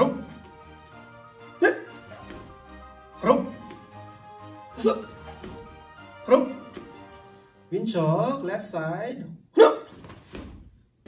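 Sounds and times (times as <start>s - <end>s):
man shouting sharply: 3.2s - 3.6s, 4.8s - 5.2s, 6.2s - 6.7s.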